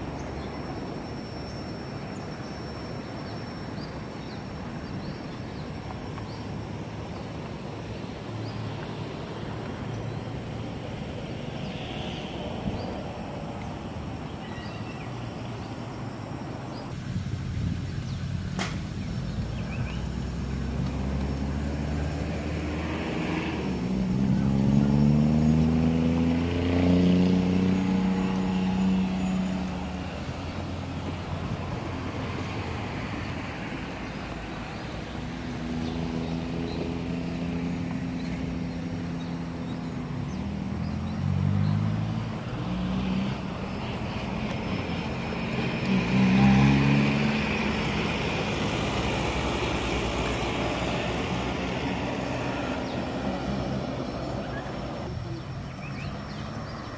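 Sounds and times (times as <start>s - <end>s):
outdoor traffic noise: 0.0s - 56.9s
vehicle engine accelerating past: 17.3s - 56.9s.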